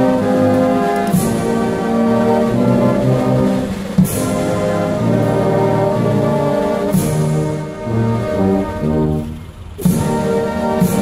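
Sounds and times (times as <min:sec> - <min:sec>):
brass band playing held chords: 0:00.0 - 0:11.0.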